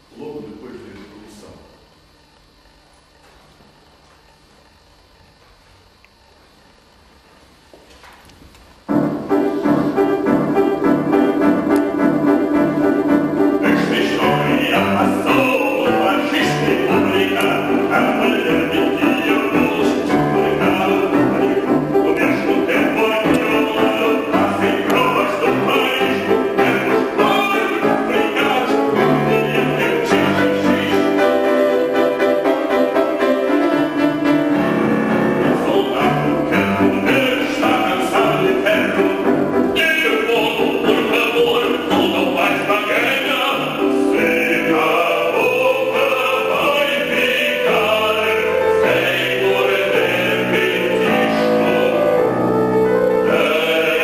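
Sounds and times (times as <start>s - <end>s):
grand piano repeated chords: 8.7s - 54.0s.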